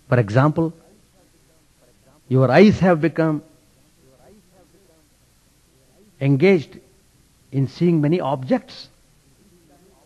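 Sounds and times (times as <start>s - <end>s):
low hiss: 0.0s - 10.0s
faint voice murmur: 0.7s - 2.3s, 3.5s - 6.2s, 9.0s - 10.0s.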